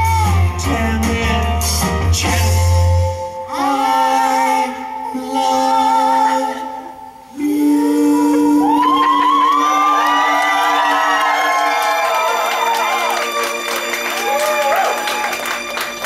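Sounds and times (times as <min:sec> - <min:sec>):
audience cheering and whooping: 0:08.4 - 0:16.0.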